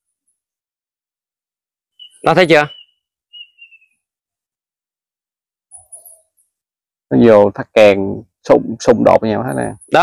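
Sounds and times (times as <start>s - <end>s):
faint whistled bird call: 1.9s - 4.1s.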